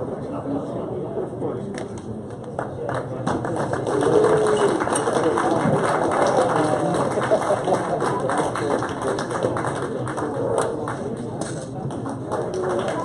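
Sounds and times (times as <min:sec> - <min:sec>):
overlapping voices chattering: 0:00.1 - 0:13.0.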